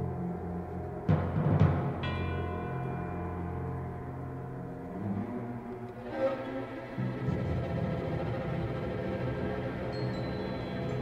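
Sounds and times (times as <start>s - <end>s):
low droning notes: 0.0s - 11.0s
gong-like ring: 1.1s - 5.8s.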